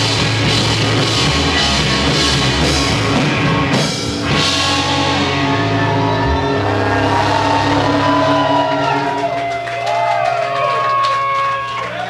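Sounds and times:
rock band playing live: 0:00.0 - 0:09.2.

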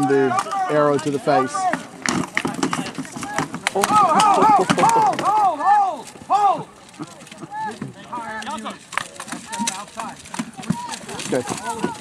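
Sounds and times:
voices shouting: 0:00.0 - 0:12.0
weapons knocking on shields: 0:01.6 - 0:05.4.

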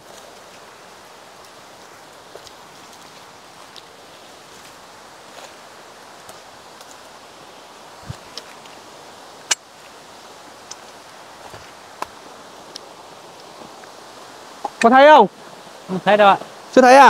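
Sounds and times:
steady background hiss: 0:00.0 - 0:17.0
faint rustles and clicks: 0:07.9 - 0:14.8.

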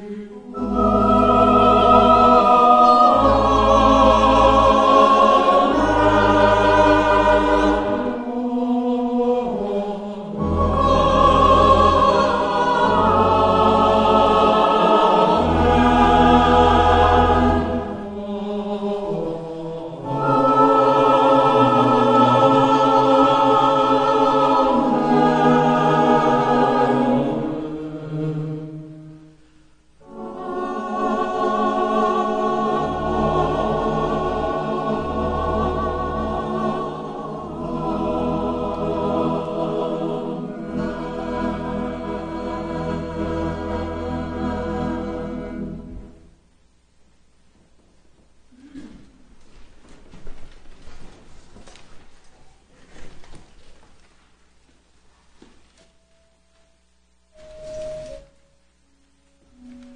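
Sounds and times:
deep sustained accompaniment: 0:00.0 - 0:09.4
church choir singing a hymn: 0:00.0 - 0:46.3.

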